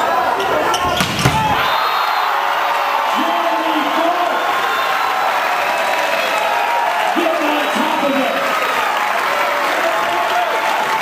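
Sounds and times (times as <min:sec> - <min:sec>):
crowd voices in hall: 0:00.0 - 0:11.0
volleyball hits: 0:00.4 - 0:01.8.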